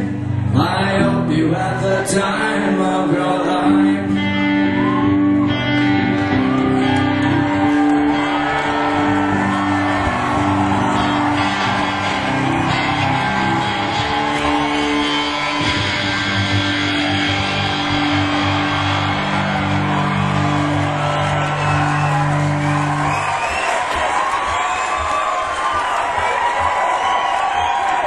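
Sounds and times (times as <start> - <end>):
electric guitar chords ringing: 0.0 - 23.4.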